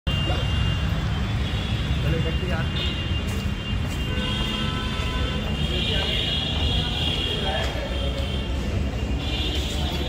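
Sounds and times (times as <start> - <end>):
visitors' voices: 1.8 - 10.0.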